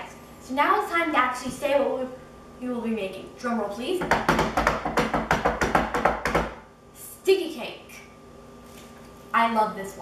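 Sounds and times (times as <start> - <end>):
hands drumming on countertop: 4.0 - 6.6.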